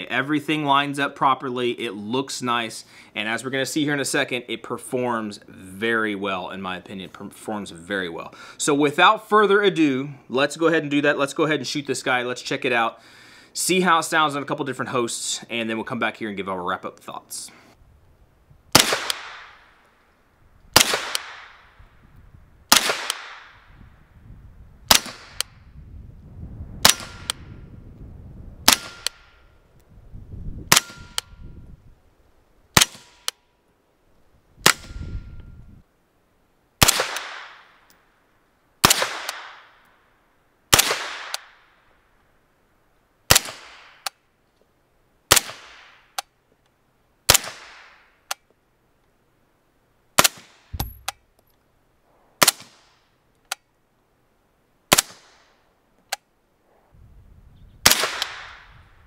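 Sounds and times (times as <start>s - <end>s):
suppressed gunshots: 18.7s - 19.6s, 20.7s - 21.6s, 22.7s - 23.6s, 28.6s - 29.3s, 36.8s - 37.6s, 50.2s - 51.2s, 57.8s - 58.7s
metallic click of gun action: 48.2s - 48.5s, 50.3s - 51.6s, 53.4s - 53.7s.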